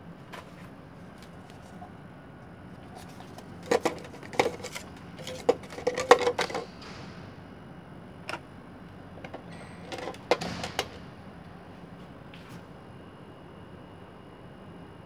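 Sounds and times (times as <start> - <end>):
plastic toy parts knocking and clicking: 3.6 - 6.7, 9.2 - 11.0.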